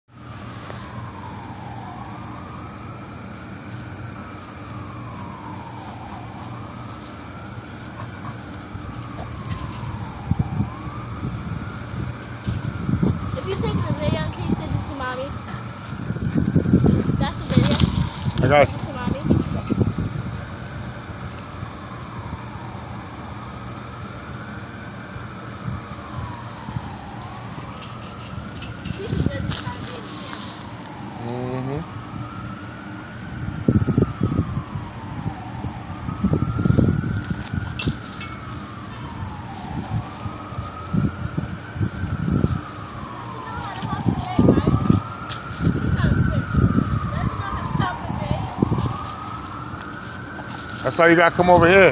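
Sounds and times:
siren wailing: 0.2s - 51.9s
dogs play-wrestling: 7.8s - 9.7s.

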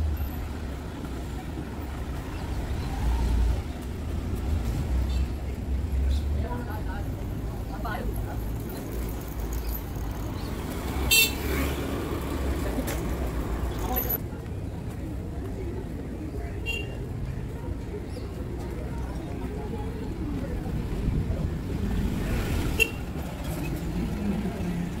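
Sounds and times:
low traffic rumble: 0.0s - 25.0s
people's voices: 0.0s - 25.0s.

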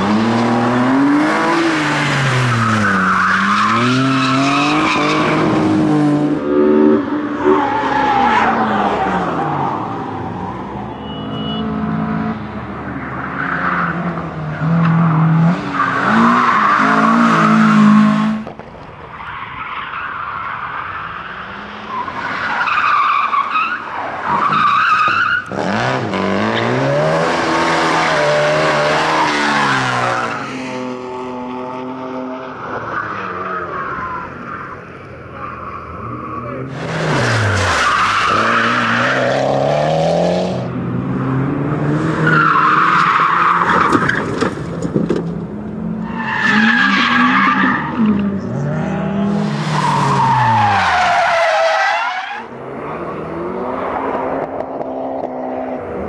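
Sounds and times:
rally car engines revving: 0.0s - 10.8s, 11.4s - 18.7s, 20.6s - 56.0s
tyre squeal: 10.8s - 11.8s.

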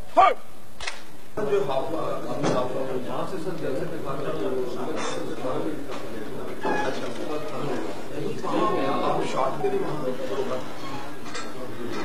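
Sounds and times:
man shouting command: 0.0s - 0.5s.

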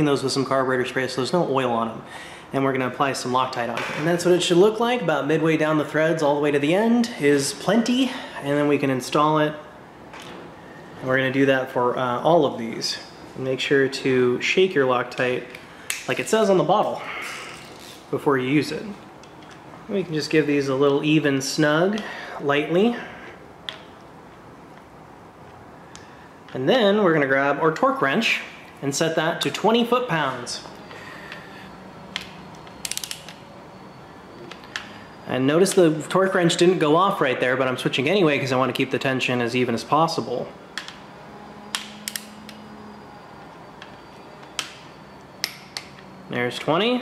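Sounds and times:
ratchet wrench clicks: 32.2s - 33.4s.

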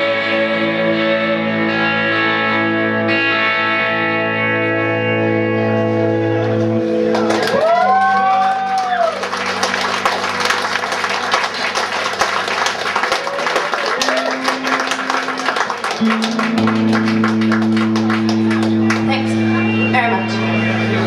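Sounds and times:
electric guitars droning: 0.0s - 21.0s.

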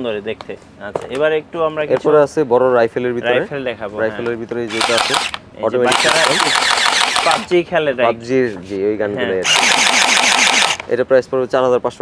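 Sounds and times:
toy gel blaster full-auto burst: 4.7s - 7.5s, 9.4s - 10.9s.

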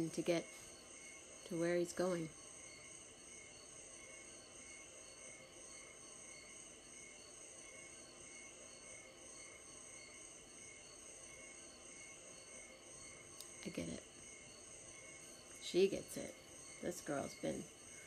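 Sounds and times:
crickets chirping: 0.0s - 18.0s.

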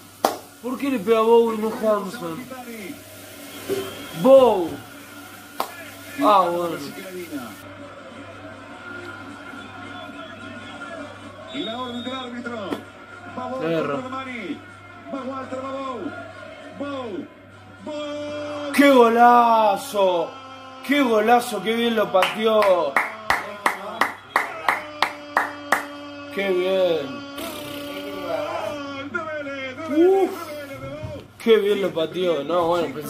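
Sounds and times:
person clapping hands slowly: 0.2s - 0.4s, 22.2s - 26.0s
faint television commentary: 0.6s - 33.0s.

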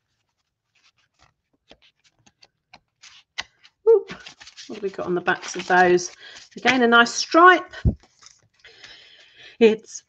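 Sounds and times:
cardstock pieces ticking and tapping: 1.1s - 7.3s.

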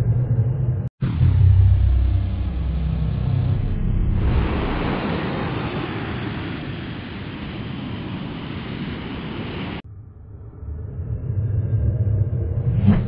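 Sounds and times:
spaceship engine rumble: 0.0s - 13.0s
steady rushing hiss: 4.2s - 9.8s.

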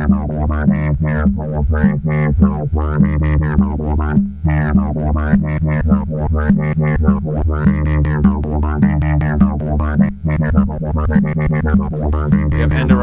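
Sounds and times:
short pitched synth notes: 0.0s - 13.0s
steady low bass tone: 0.0s - 13.0s.

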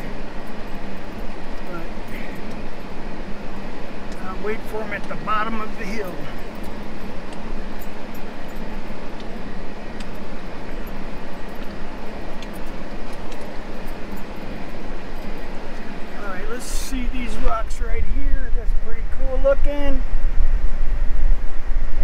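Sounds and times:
tyres on loose rock and gravel: 0.0s - 20.0s
steady low hum: 0.0s - 22.0s.

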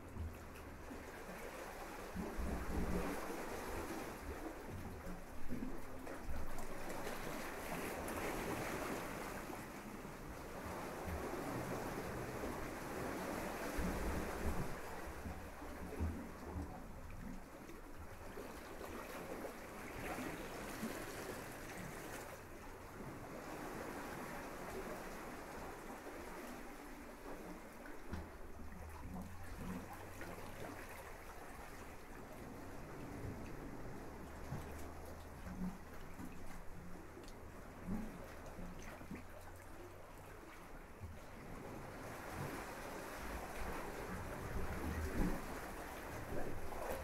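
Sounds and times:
rushing water: 0.0s - 47.0s
wind: 0.0s - 47.0s.

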